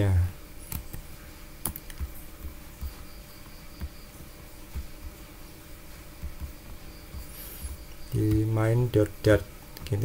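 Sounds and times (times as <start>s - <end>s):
faint steady hum: 0.0s - 10.0s
keyboard key clicks: 1.6s - 2.2s.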